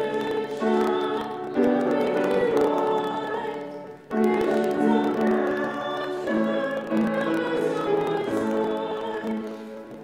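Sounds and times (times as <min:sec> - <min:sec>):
voices singing a hymn: 0:00.0 - 0:10.0.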